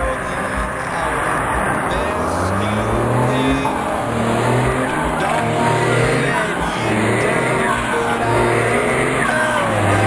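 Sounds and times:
diesel truck engine revving: 0.0s - 10.0s.

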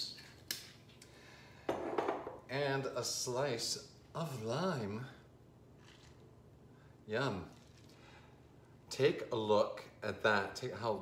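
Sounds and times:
glass bottle set down on stone: 1.7s - 2.4s.

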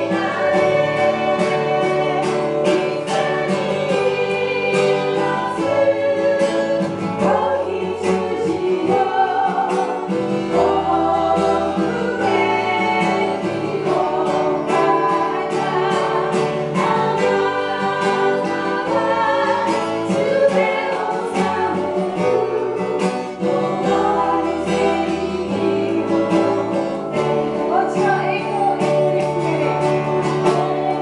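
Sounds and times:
strummed acoustic guitar: 0.0s - 31.0s
voices singing together: 0.0s - 31.0s.

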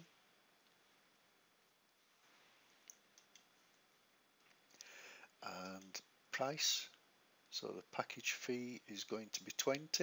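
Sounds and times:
faint computer mouse clicks: 2.8s - 3.5s.

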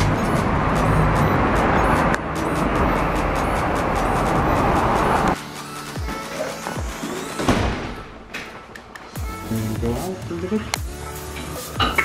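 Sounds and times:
rumbling of crowded vehicle: 0.0s - 5.4s
background music with steady beat: 0.0s - 12.0s.

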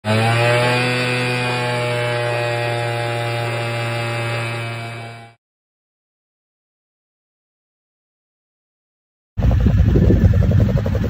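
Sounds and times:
quad bike engine running: 0.0s - 5.4s, 9.4s - 11.0s.

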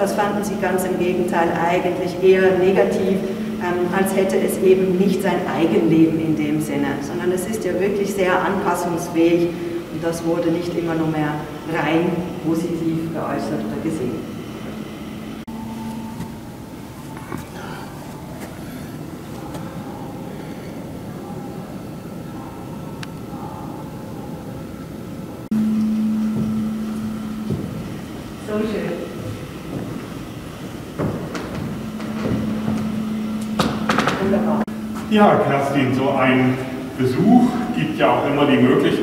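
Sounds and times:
low ventilation hum: 0.0s - 39.0s
footsteps on floor: 27.4s - 28.0s, 29.2s - 35.1s.

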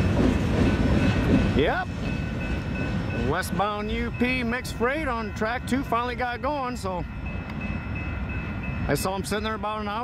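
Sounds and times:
freight train rolling: 0.0s - 10.0s.

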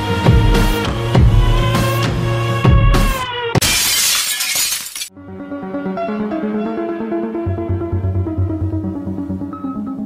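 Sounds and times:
shattering crash sound effect: 3.6s - 5.1s.

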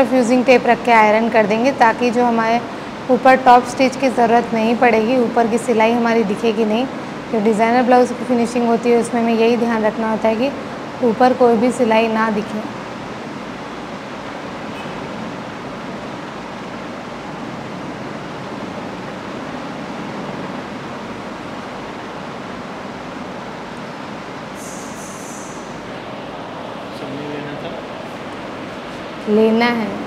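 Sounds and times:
steady background hiss: 0.0s - 30.0s
brief higher hiss: 24.6s - 25.8s.

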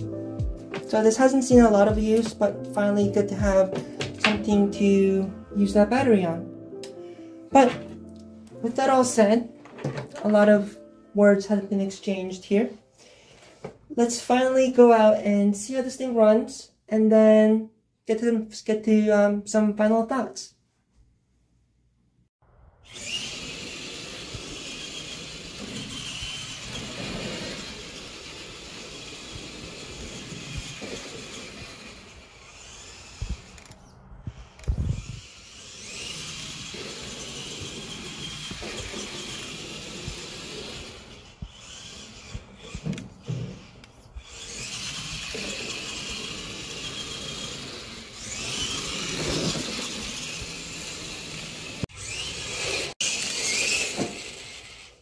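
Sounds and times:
electric motor and gearbox whining: 0.0s - 5.0s, 22.8s - 55.0s.

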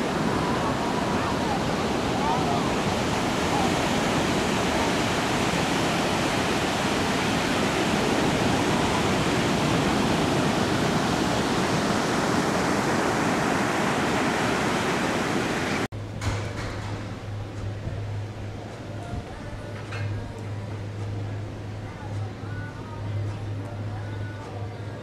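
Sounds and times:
waves breaking on a beach: 0.0s - 15.9s.

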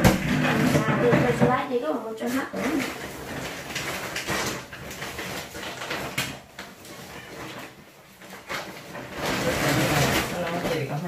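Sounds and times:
plastic bags scraping across tiles: 0.0s - 11.0s.

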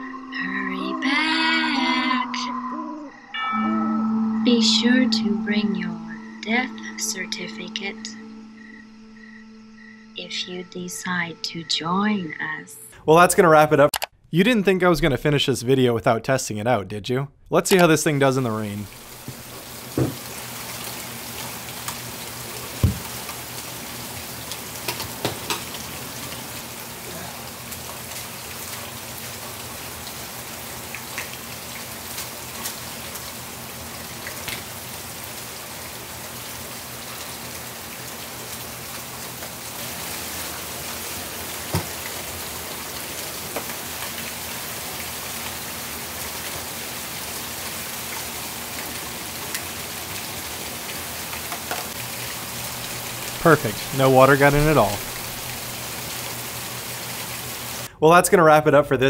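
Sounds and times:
rain drops tapping: 17.6s - 57.9s
steady rain falling: 17.7s - 57.9s.

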